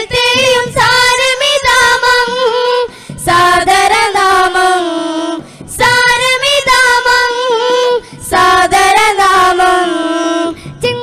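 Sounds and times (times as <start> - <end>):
group singing devotional song: 0.0 - 11.0.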